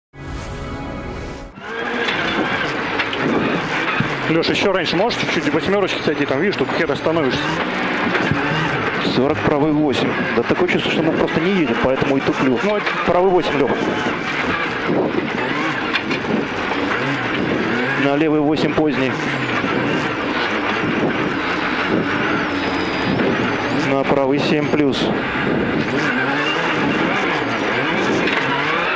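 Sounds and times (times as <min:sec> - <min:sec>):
rally car engine: 0:01.5 - 0:28.9.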